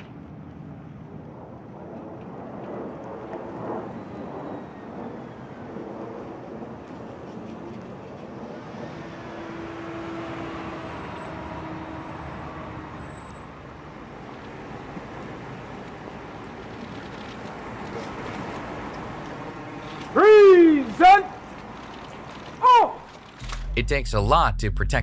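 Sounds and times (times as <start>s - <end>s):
tyre and road noise: 6.0s - 24.4s
motorcycle and car engines: 23.4s - 24.2s
steady hum: 23.4s - 25.0s.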